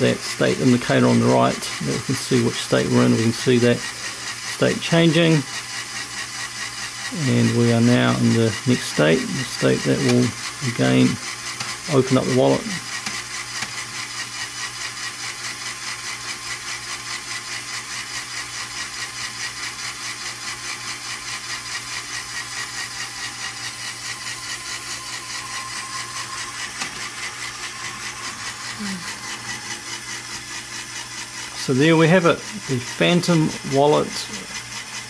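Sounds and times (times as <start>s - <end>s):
electric motor whirring: 0.0s - 35.0s
fast regular mechanical pulsing: 0.0s - 35.0s.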